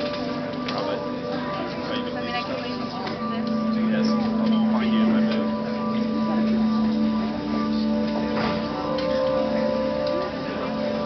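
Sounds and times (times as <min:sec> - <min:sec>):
audience talking: 0:00.0 - 0:11.0.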